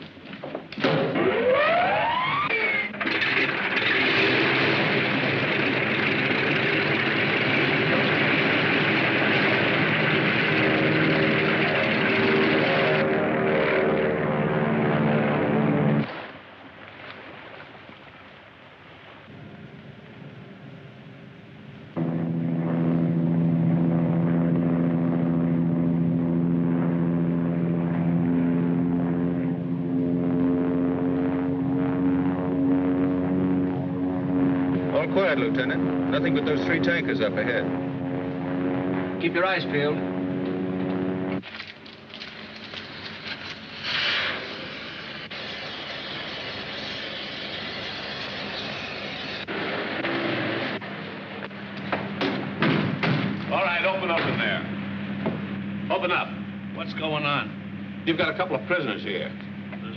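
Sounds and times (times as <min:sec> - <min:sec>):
aircraft engines running: 0:00.0 - 0:59.9
rising engine whine: 0:00.7 - 0:16.1, 0:19.2 - 0:59.9
deep engine drone: 0:00.8 - 0:16.1, 0:19.2 - 0:59.9.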